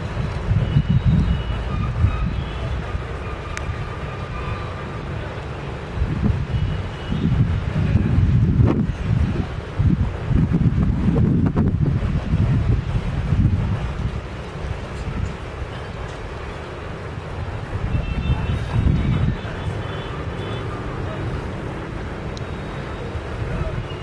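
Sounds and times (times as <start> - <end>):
wind buffeting microphone: 0.0 - 4.6, 5.2 - 24.0
faint voices: 1.5 - 9.7, 14.8 - 24.0.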